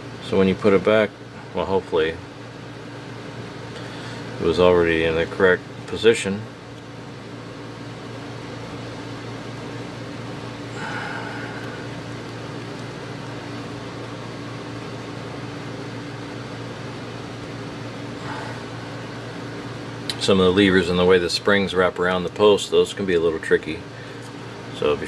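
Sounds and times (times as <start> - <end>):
low room hum: 0.0 - 25.0.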